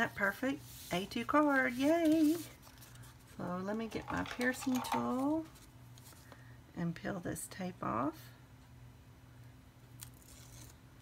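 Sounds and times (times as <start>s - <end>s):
soft paper rustle: 0.0s - 6.4s
low steady hum: 0.0s - 11.0s.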